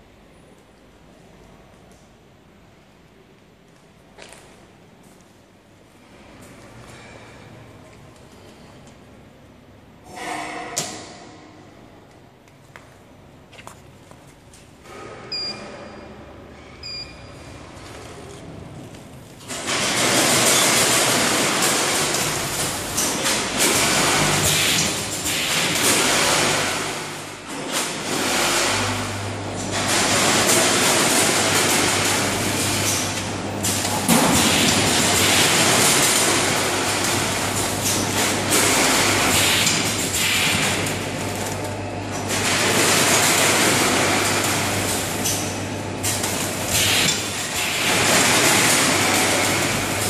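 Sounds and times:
packing machine running: 14.0s - 50.0s
short beeps: 15.3s - 17.4s.

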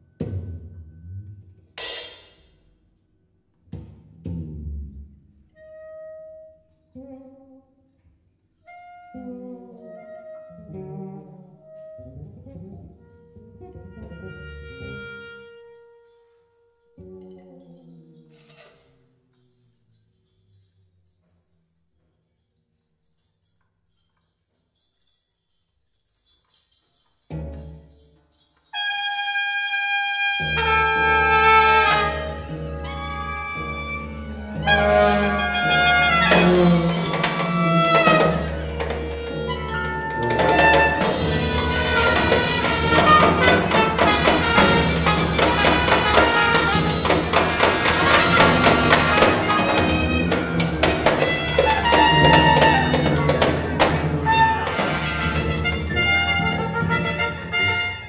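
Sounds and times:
percussion: 0.0s - 58.0s
tuba: 3.8s - 8.0s, 8.6s - 21.3s, 28.7s - 58.0s
woodwind: 5.5s - 8.0s, 8.6s - 18.9s, 28.7s - 58.0s
cello: 8.7s - 16.1s, 30.4s - 57.8s.

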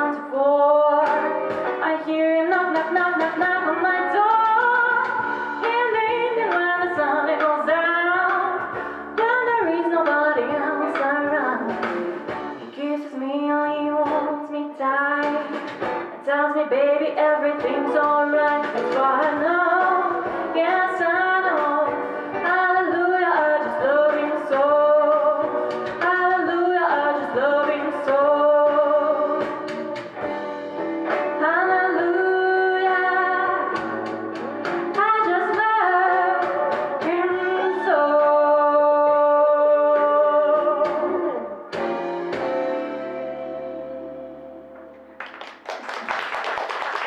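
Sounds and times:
woman singing jazz: 0.0s - 30.2s, 31.1s - 44.7s
audience applauding: 45.1s - 47.0s.

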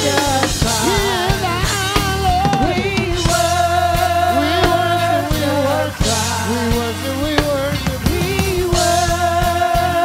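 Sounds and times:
drum kit beat: 0.0s - 10.0s
group singing gospel: 0.0s - 10.0s.

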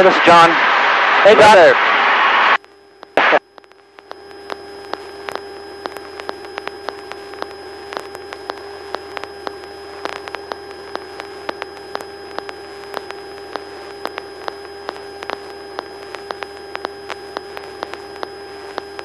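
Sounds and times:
electronic hum: 0.0s - 19.0s
radio crackling clicks: 0.0s - 19.0s
radio hiss: 0.0s - 19.0s.

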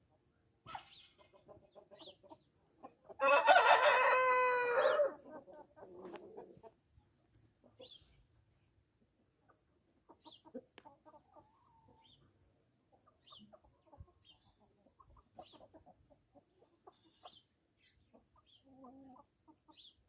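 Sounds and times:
chickens clucking faintly: 0.0s - 20.0s.

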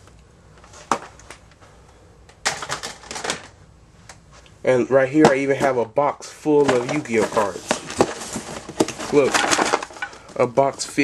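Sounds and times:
small hard objects clattering: 2.4s - 3.5s, 6.6s - 11.0s.

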